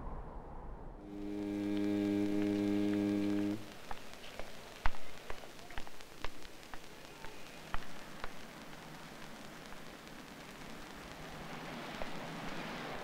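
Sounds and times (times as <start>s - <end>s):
low buzzy hum: 0.0s - 13.0s
sharp clicks and pops: 1.1s - 13.0s.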